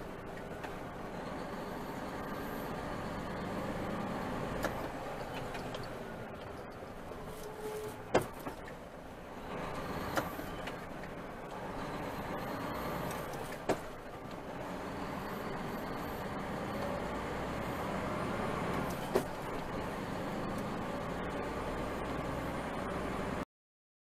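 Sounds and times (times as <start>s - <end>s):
truck engine and road noise: 0.0s - 23.5s.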